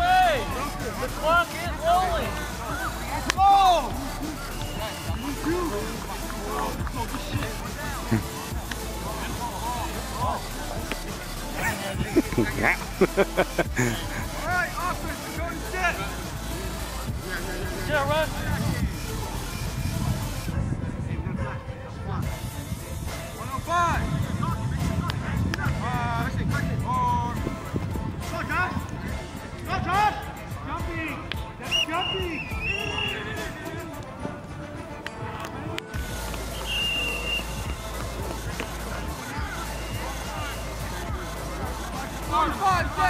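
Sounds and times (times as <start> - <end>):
people shouting: 0.0 - 10.8, 11.4 - 15.1
music playing: 0.0 - 43.0.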